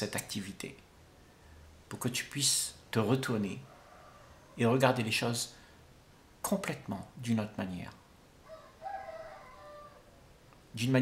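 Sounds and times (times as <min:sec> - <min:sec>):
faint drawn-out animal call: 0:03.6 - 0:04.6, 0:08.4 - 0:10.3.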